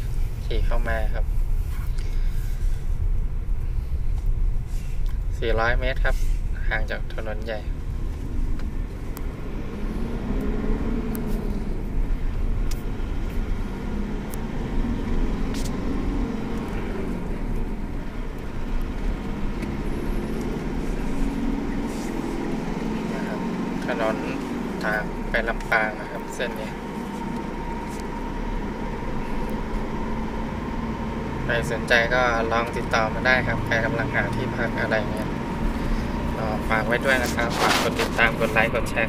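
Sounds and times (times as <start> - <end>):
car engine: 0.0 - 39.0
road rumble: 0.0 - 39.0.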